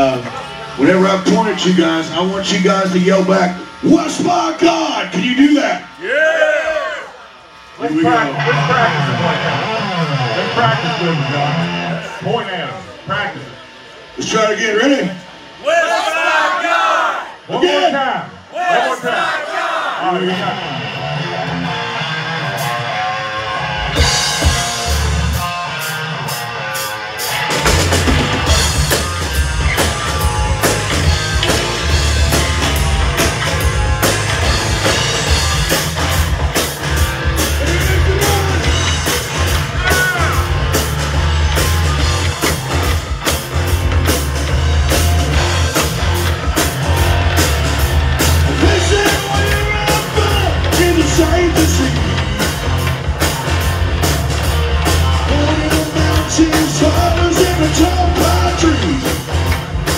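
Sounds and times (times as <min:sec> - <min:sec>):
live rock band playing: 0:00.0 - 0:06.1, 0:06.7 - 0:15.6, 0:20.0 - 0:59.9
electric guitar: 0:00.0 - 0:15.6, 0:20.1 - 0:59.9.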